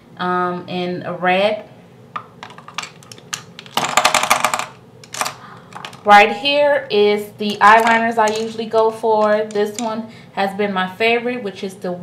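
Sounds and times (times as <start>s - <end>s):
pencils clicking against plastic: 2.4s - 6.0s, 7.4s - 9.9s.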